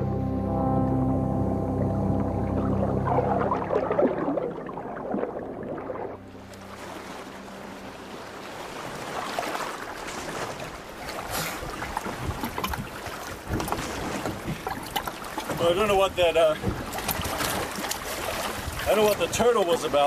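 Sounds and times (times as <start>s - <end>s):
water noise: 0.0s - 20.0s
wind: 0.0s - 20.0s.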